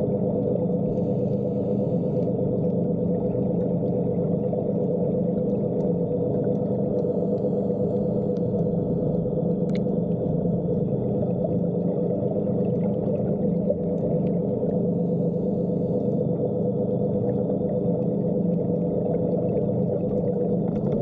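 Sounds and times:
underwater scooter motor humming: 0.0s - 21.0s.

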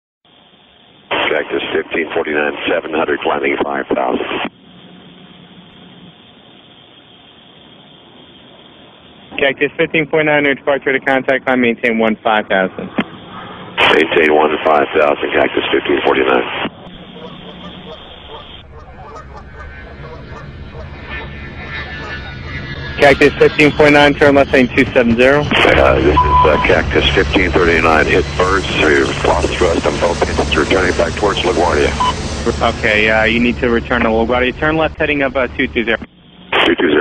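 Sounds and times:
low steady hum: 0.3s - 37.0s
steady radio hiss: 0.3s - 37.0s
radio voice transmission: 1.1s - 4.5s, 9.3s - 13.2s, 13.8s - 18.6s, 21.0s - 37.0s
geese honking: 16.9s - 24.4s.

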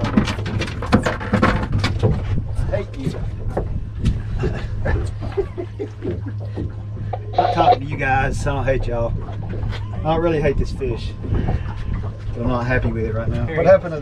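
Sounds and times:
knocks and clatter on deck: 0.0s - 4.2s
outboard motor humming: 0.0s - 14.0s
person speaking: 7.2s - 8.0s.

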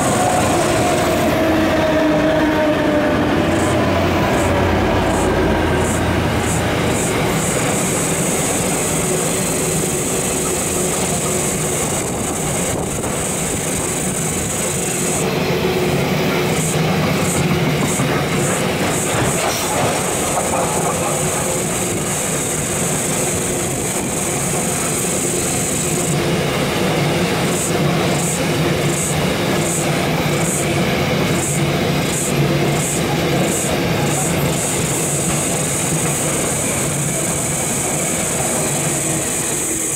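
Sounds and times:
freight train rolling past: 0.0s - 39.9s.

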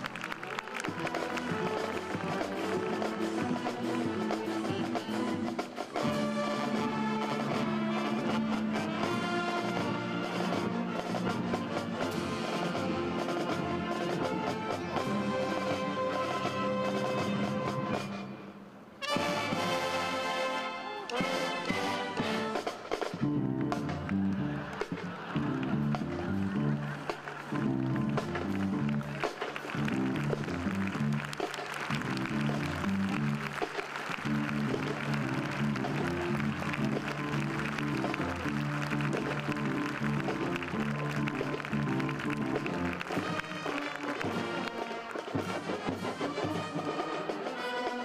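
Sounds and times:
military band playing march: 0.0s - 18.4s, 19.0s - 48.0s
military brass band chord: 19.0s - 22.9s
drum strokes: 21.2s - 48.0s.

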